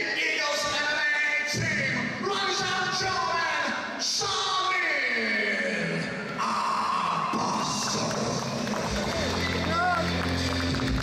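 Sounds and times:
music over sound system: 7.7s - 11.0s.

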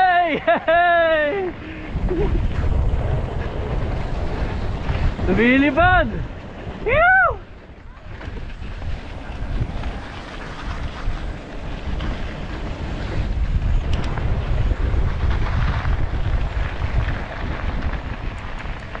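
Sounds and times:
bike riding on dirt trail: 0.0s - 19.0s
wind buffeting microphone: 0.0s - 19.0s.

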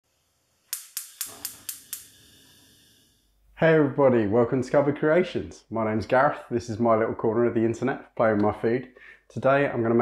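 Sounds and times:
sharp percussive hits: 0.8s - 2.2s.

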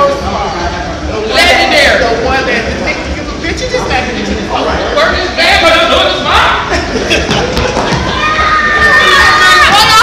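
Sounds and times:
noisy room: 0.0s - 10.0s.

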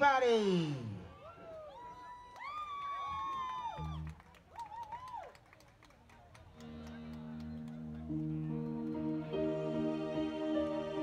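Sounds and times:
electric guitar chords: 6.6s - 11.0s.

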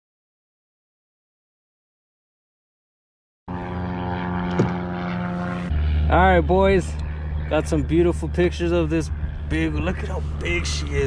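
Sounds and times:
engine drone: 3.5s - 11.0s.

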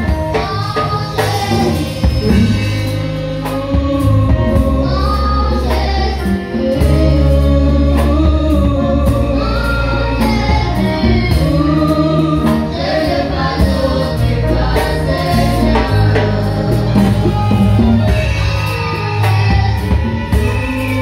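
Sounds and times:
girl singing into microphone: 0.0s - 2.6s, 3.4s - 17.2s
congas: 0.0s - 21.0s
drum kit hits: 0.0s - 21.0s
guitar: 0.0s - 21.0s
low bass notes: 0.0s - 21.0s.

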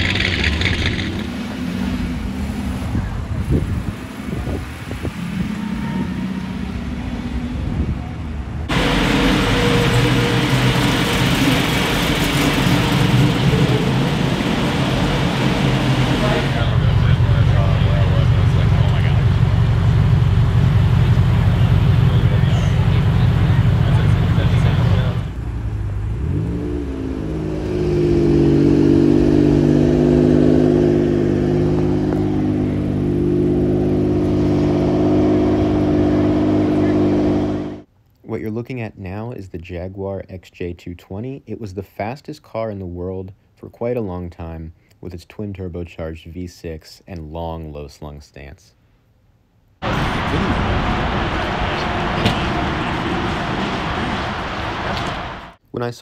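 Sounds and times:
car engines revving: 0.0s - 37.9s, 49.8s - 55.6s.

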